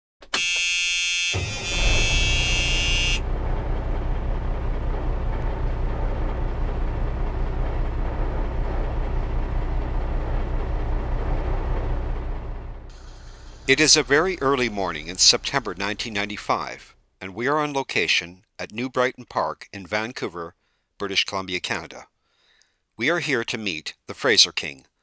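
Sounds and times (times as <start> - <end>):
horn-like tone: 0.3 - 3.6
boat engine rumble: 1.4 - 16.8
high hiss: 12.9 - 16.3.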